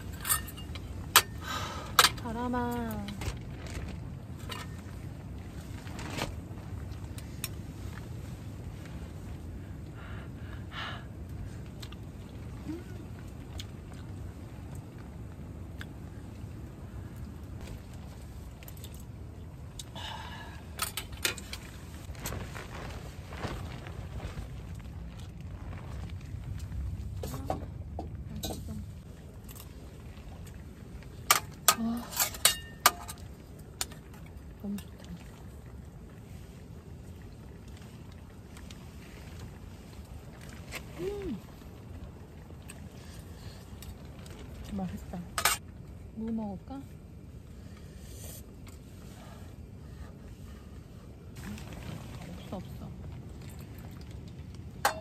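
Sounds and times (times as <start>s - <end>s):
metal camping dishes clinking: 0.0s - 2.2s, 31.3s - 33.3s, 45.3s - 45.6s, 54.8s - 55.0s
steady low rumble: 0.0s - 55.0s.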